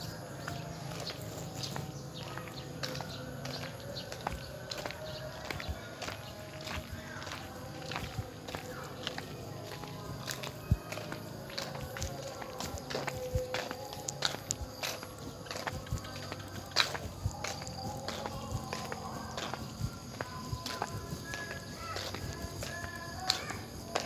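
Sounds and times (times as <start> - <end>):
footsteps with clicks and scuffs: 0.0 - 24.0.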